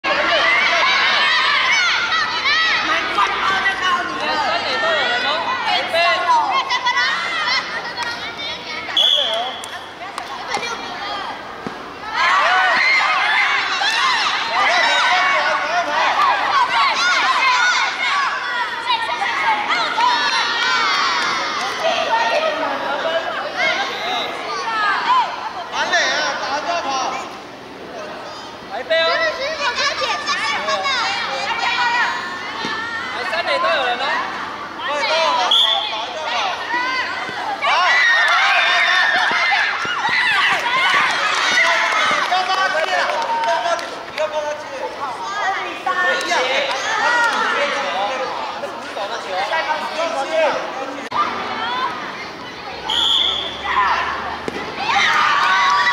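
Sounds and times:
children shouting and cheering: 0.0s - 9.0s, 10.1s - 25.7s, 28.9s - 33.6s, 34.3s - 44.0s, 44.7s - 48.6s, 49.2s - 55.9s.

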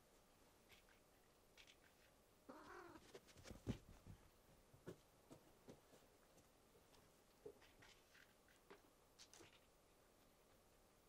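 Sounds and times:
cat meowing: 2.5s - 3.1s.

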